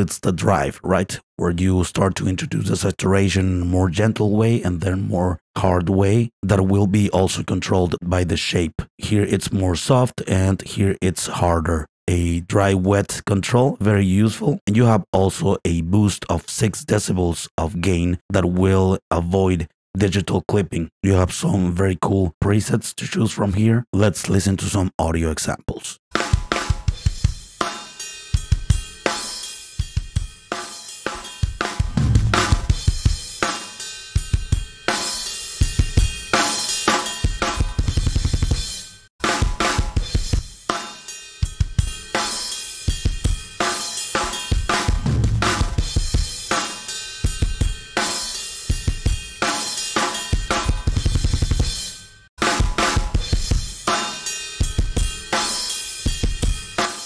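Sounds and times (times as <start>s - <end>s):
drum kit playing: 26.1s - 57.0s.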